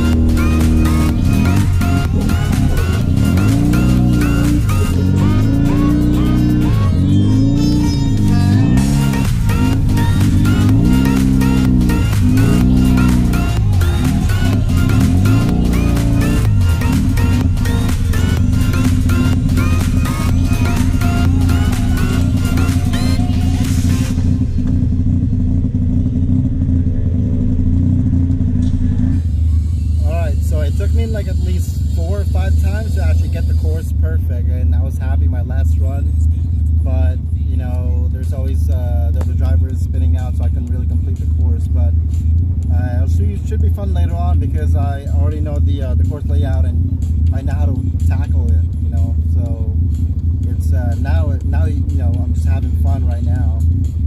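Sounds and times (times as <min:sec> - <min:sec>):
electronic music with heavy bass: 0:00.0 - 0:25.6, 0:28.4 - 0:34.5, 0:38.5 - 0:54.0
person speaking over music: 0:42.8 - 0:49.8, 0:50.4 - 0:53.6.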